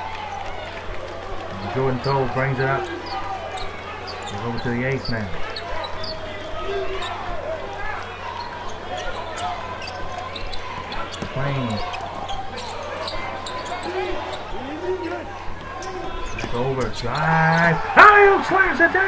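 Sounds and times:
crowd noise: 0:00.0 - 0:19.0
people shouting: 0:00.0 - 0:19.0
sneakers squeaking: 0:00.0 - 0:19.0.

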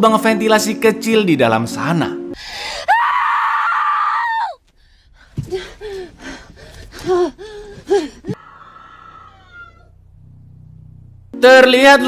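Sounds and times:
woman crying out and gasping: 0:02.4 - 0:04.6, 0:05.3 - 0:09.8
low hum: 0:04.7 - 0:11.4.

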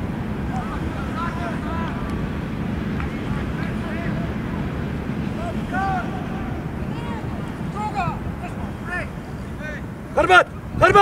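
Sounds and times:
wind rumbling on microphone: 0:00.0 - 0:11.0
distant shouts from players: 0:00.4 - 0:11.0.

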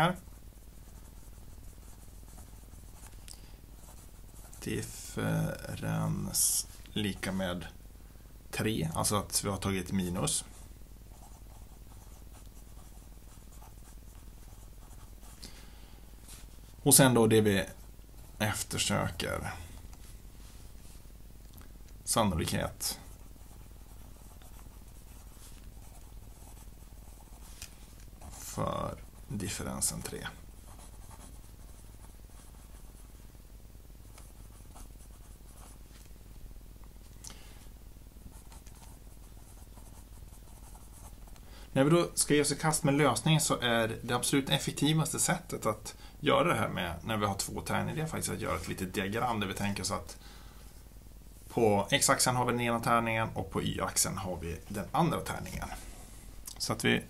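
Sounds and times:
pen scratching on paper: 0:30.6 - 0:33.0.

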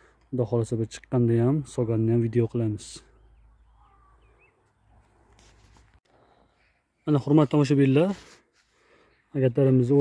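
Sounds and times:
faint warbling bird chirps: 0:03.1 - 0:05.2, 0:06.3 - 0:07.7.

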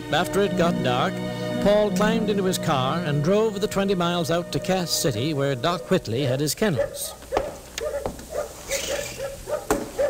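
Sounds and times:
dogs barking: 0:05.4 - 0:10.0.

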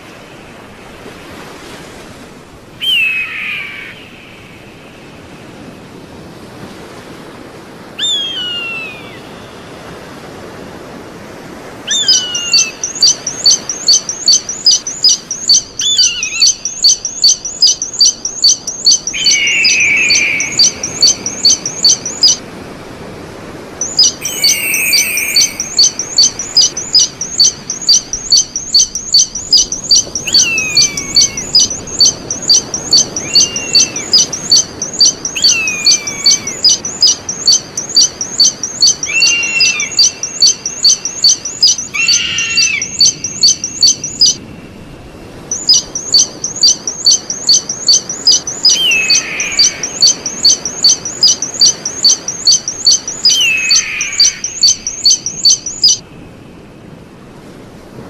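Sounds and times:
lower downward-slurred eagle call: 0:02.8 - 0:04.4, 0:08.0 - 0:09.4, 0:11.9 - 0:22.4, 0:23.8 - 0:44.4, 0:45.5 - 0:56.0
eagle piping calls: 0:02.8 - 0:04.6, 0:08.0 - 0:09.4, 0:11.8 - 0:22.4, 0:23.8 - 0:44.4, 0:45.5 - 0:56.0.

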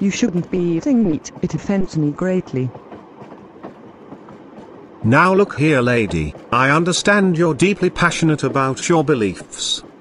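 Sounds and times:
train rumbling inside carriage: 0:00.0 - 0:10.0.

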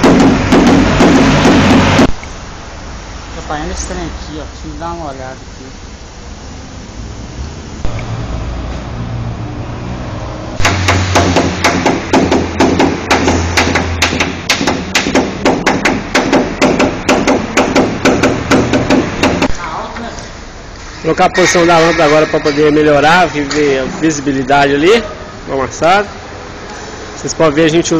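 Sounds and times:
hammer tapping on sheet metal: 0:00.0 - 0:02.1, 0:10.6 - 0:19.6.

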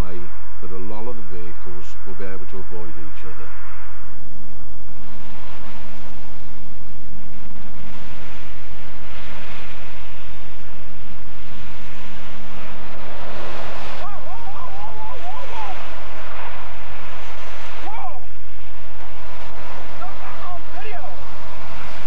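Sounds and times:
steady low traffic hum: 0:00.0 - 0:22.0.

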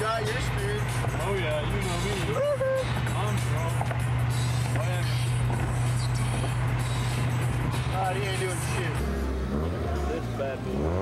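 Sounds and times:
tyre and road noise: 0:00.0 - 0:11.0.

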